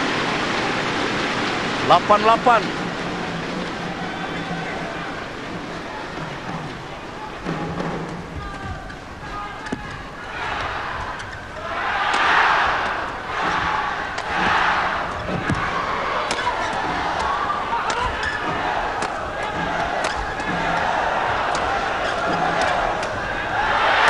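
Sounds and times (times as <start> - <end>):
crowd cheering: 0.0 - 24.0
crowd voices din: 0.0 - 24.0
racket striking shuttlecock: 9.6 - 23.4.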